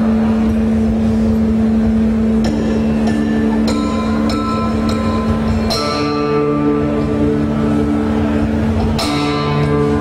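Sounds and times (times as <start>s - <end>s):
droning electric guitar note: 2.5s - 10.0s.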